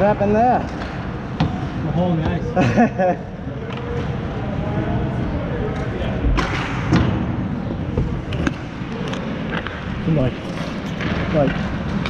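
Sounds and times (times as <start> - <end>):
steady rink noise: 0.0 - 12.0.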